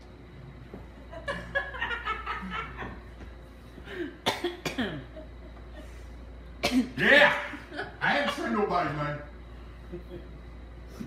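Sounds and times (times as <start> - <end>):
man coughing: 3.9 - 5.2, 6.6 - 7.6.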